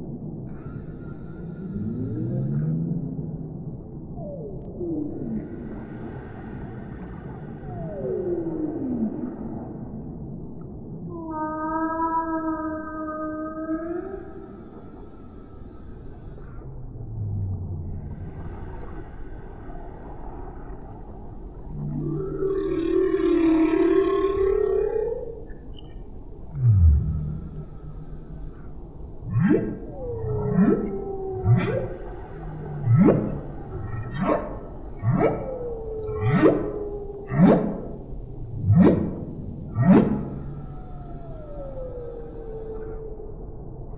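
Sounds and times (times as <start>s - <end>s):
low background rumble: 0.0s - 43.9s
whale song call: 4.2s - 10.1s, 11.0s - 43.9s.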